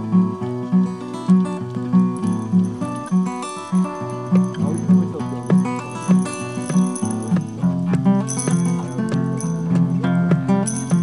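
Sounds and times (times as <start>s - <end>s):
quickly picked guitar notes: 0.8s - 11.0s.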